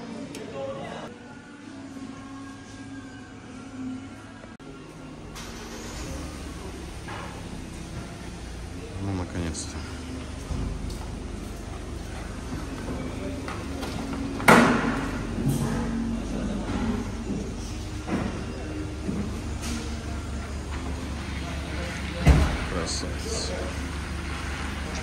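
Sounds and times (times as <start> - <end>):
car engine idling: 4.6 - 25.0.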